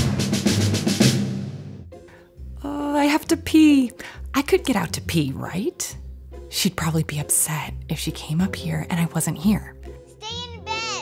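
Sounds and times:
intro music drum hits: 0.0 - 2.0.

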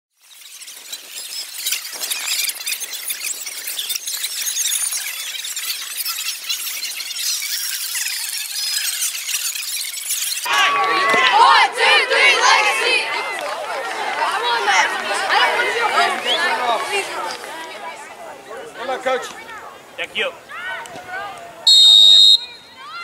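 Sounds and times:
high-pitched busy noise: 0.2 - 10.8
boys shouting together: 10.5 - 19.8.

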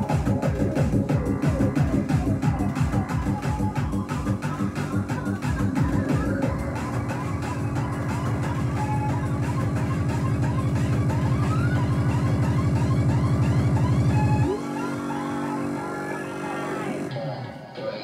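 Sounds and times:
siren-like sweeps: 5.7 - 17.1.

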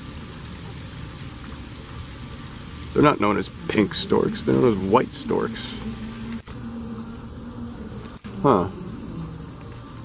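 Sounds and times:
flying insect buzzing: 2.9 - 10.0.

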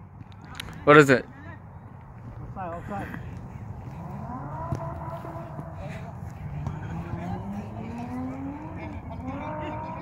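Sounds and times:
vehicle engine accelerating: 3.6 - 10.0.

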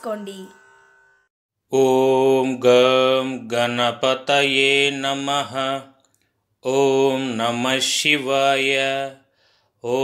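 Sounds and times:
man chanting: 1.7 - 6.0, 6.6 - 9.2.

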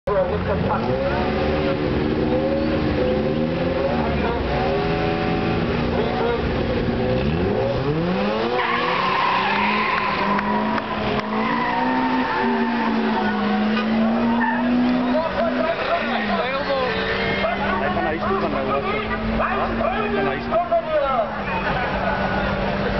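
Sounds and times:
car engine revving: 0.1 - 22.9
tyre squeal: 8.4 - 17.8.

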